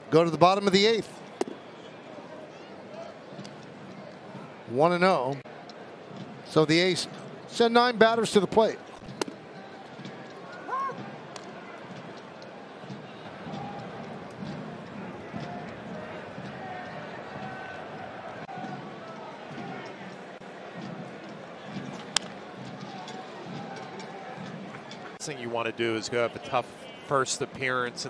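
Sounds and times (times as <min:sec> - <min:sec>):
crowd murmur: 0:01.0 - 0:07.7, 0:08.4 - 0:28.0
bat hitting baseball: 0:09.1 - 0:09.4.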